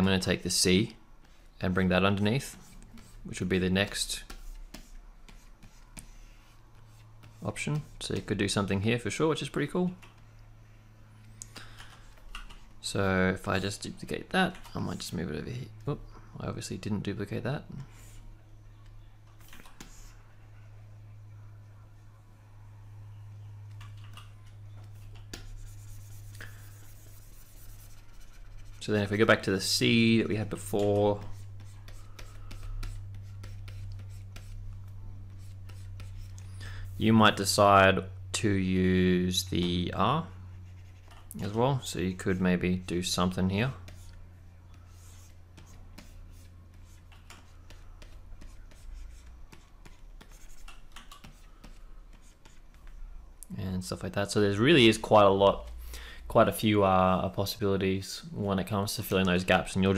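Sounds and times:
steady low hum: 0.0s - 59.9s
stylus scratching on tablet: 1.2s - 8.6s, 17.8s - 20.4s, 23.6s - 37.5s, 40.3s - 53.2s.

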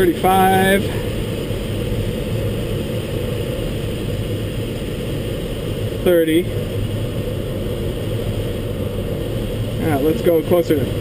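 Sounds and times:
airflow rushing over canopy: 0.0s - 11.0s.

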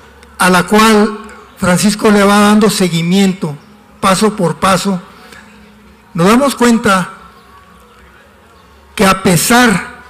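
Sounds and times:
man speaking: 0.4s - 5.1s, 6.1s - 7.2s, 9.0s - 10.0s.

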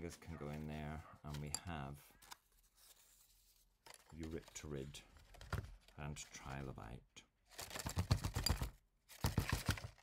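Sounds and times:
card rustling: 1.3s - 5.9s, 7.5s - 10.0s.

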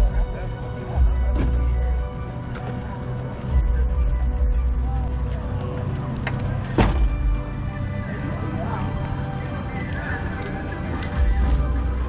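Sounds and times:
music with deep bass: 0.0s - 12.0s
vehicle sounds: 0.0s - 12.0s.

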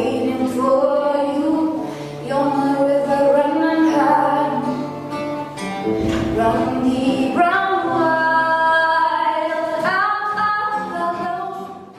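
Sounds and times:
acoustic guitar: 0.0s - 11.9s.

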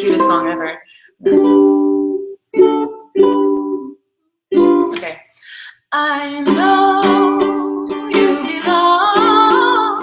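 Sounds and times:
ukulele chords strummed: 0.0s - 5.0s, 6.4s - 10.0s.

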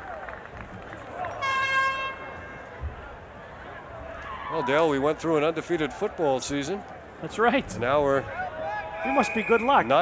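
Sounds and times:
stadium crowd murmur: 0.0s - 10.0s
horn tone: 1.4s - 2.4s.

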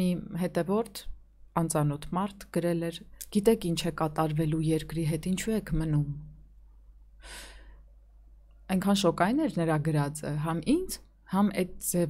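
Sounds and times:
short breath close to microphone: 7.2s - 7.9s.

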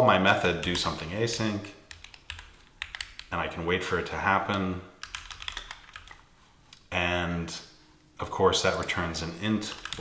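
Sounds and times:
computer keyboard typing: 0.6s - 3.3s, 5.0s - 6.2s, 9.7s - 10.0s.

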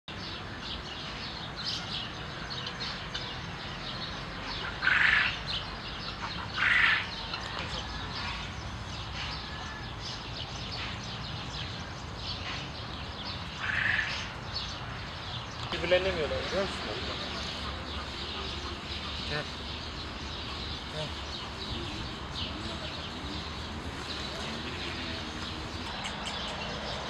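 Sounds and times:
small birds chirping: 0.1s - 27.0s
harsh short bird calls: 4.5s - 11.0s, 13.3s - 14.8s.

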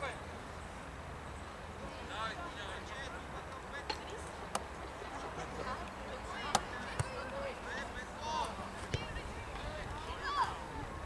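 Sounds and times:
players shouting: 5.3s - 11.0s
ball kicks: 8.8s - 9.2s.

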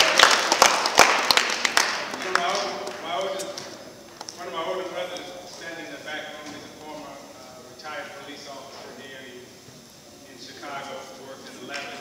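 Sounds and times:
man speaking into microphone: 4.4s - 9.5s, 10.2s - 12.0s.

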